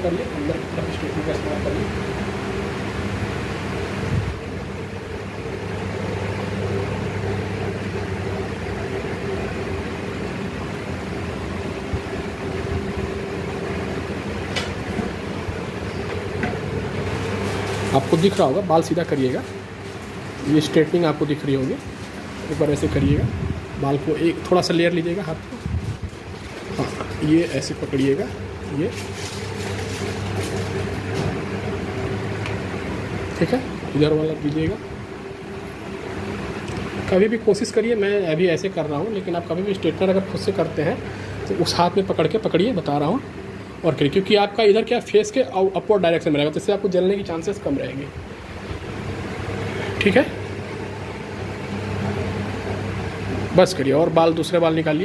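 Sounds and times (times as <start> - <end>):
steady mechanical hum: 0.0 - 55.0.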